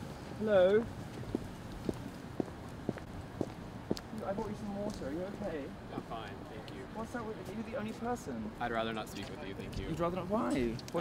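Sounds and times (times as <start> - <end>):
footsteps on pavement: 0.7 - 5.4, 9.1 - 9.5.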